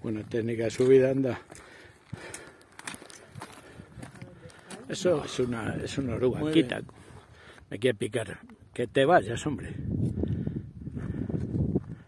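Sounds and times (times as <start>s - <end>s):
footsteps on stony trail: 0.0s - 7.7s, 10.1s - 12.0s
walking pole tips clicking on rocks: 0.7s - 4.9s.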